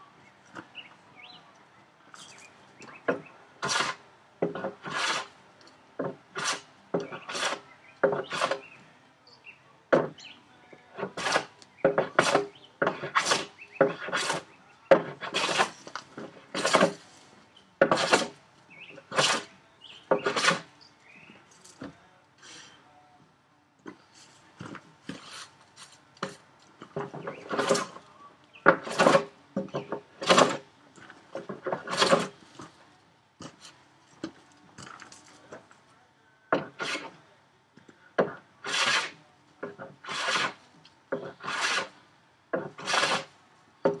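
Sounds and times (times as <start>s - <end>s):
hand plane strokes on wood: 3.6s - 5.3s, 6.0s - 8.6s, 11.0s - 17.0s, 17.8s - 18.4s, 20.1s - 20.6s, 31.5s - 32.3s, 36.6s - 37.1s, 38.6s - 39.2s, 39.8s - 40.6s, 41.2s - 41.9s, 42.6s - 43.3s.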